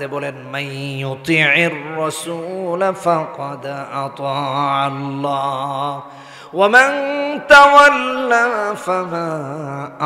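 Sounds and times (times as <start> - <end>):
man chanting melodic recitation: 0.0 - 10.0.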